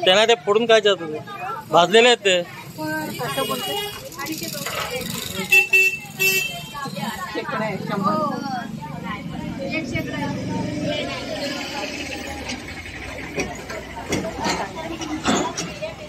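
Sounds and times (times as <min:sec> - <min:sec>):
traffic rumble: 0:00.0 - 0:16.0
people talking: 0:02.4 - 0:16.0
vehicle horn tooting: 0:03.2 - 0:04.2, 0:05.4 - 0:07.0.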